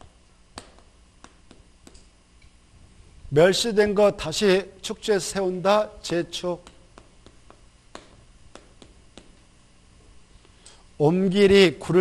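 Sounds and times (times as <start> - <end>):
chalk tapping on blackboard: 0.5 - 2.0, 6.0 - 9.5.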